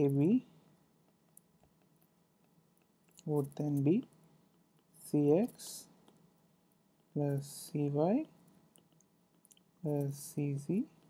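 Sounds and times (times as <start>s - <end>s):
person speaking: 0.0s - 0.6s, 3.1s - 4.2s, 4.8s - 6.2s, 7.0s - 8.5s, 9.6s - 11.0s.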